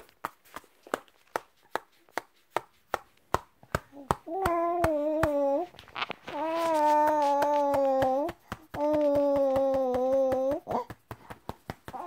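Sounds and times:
hand patting baby: 0:00.0 - 0:12.0
baby fussing cry: 0:04.3 - 0:11.0.

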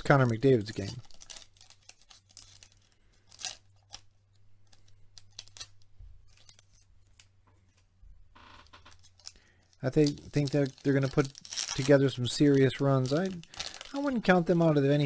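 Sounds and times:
foil wrapper tearing and crackling: 0:00.0 - 0:06.8, 0:09.0 - 0:15.0.

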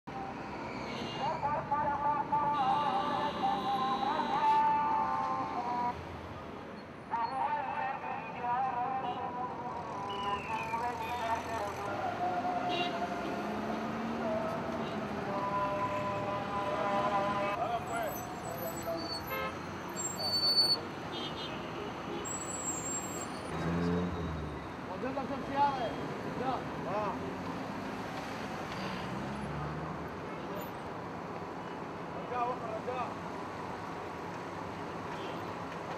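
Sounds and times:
steady traffic noise: 0:00.0 - 0:35.9
car horns: 0:02.5 - 0:04.9, 0:12.6 - 0:13.9, 0:14.7 - 0:23.5.

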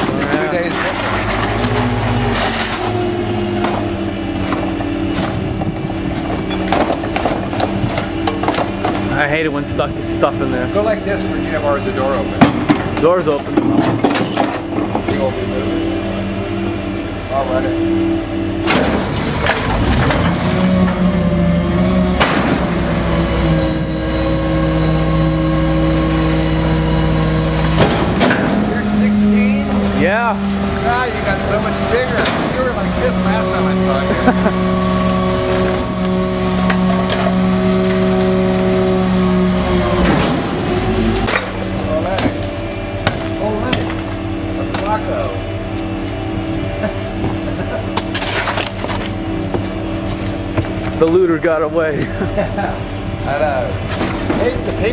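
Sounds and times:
metal and trash knocking: 0:00.0 - 0:09.3, 0:12.4 - 0:15.3, 0:22.2 - 0:23.2, 0:27.4 - 0:29.2, 0:31.0 - 0:32.9, 0:40.0 - 0:44.1
garbage truck engine and hydraulics: 0:00.0 - 0:54.9.

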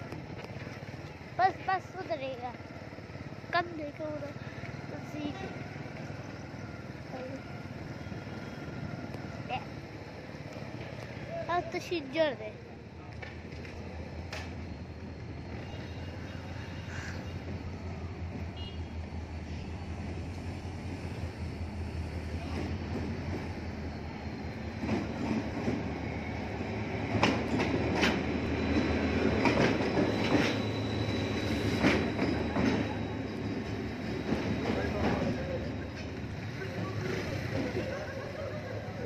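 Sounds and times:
diesel locomotive engine drone: 0:00.0 - 0:39.0.

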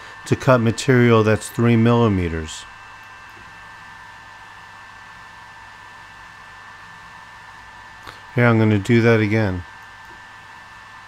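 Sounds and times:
faint high whine: 0:00.0 - 0:11.0
fan hiss: 0:00.0 - 0:11.0.

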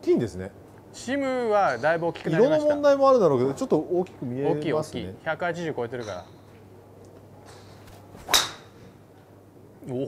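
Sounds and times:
golf club striking ball: 0:07.5 - 0:08.9.

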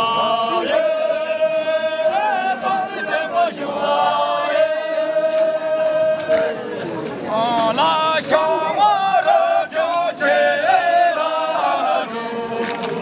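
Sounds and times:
group singing in unison: 0:00.0 - 0:13.0.

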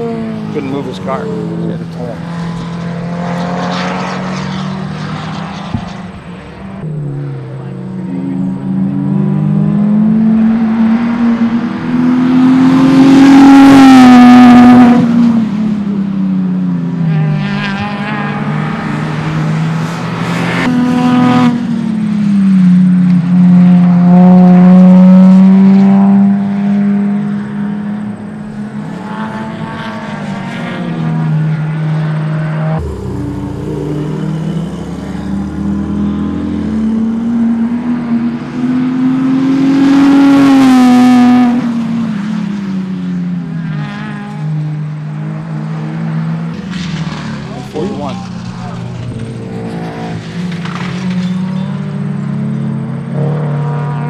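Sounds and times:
race car engines passing: 0:00.0 - 0:54.0.

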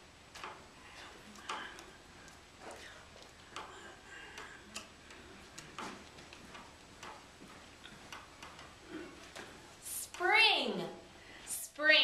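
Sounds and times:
faint irregular clicks: 0:00.0 - 0:11.6
light taps: 0:00.3 - 0:10.3.

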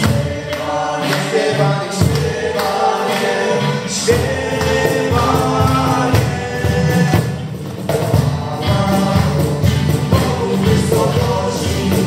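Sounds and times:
acoustic guitars strumming: 0:00.0 - 0:12.0
cajon beat: 0:00.0 - 0:12.0.

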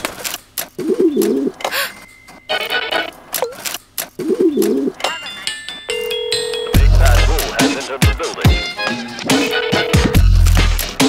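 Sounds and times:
dove cooing: 0:00.8 - 0:01.9, 0:04.2 - 0:05.0.

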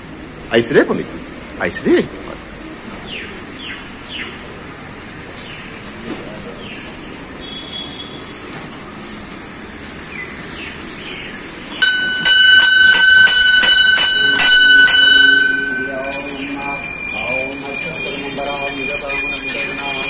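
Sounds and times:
brass bell struck by clapper: 0:11.8 - 0:20.0
small bell rung rapidly: 0:11.8 - 0:20.0
person speaking: 0:13.7 - 0:20.0.

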